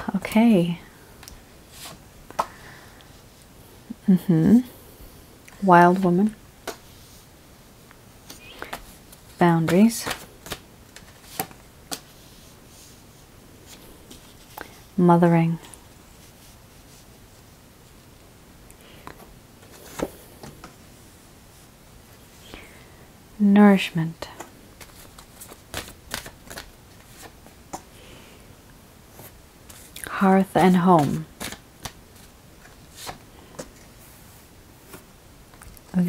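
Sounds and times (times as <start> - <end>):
cards flicking and tapping: 24.4 - 26.7, 30.6 - 32.0.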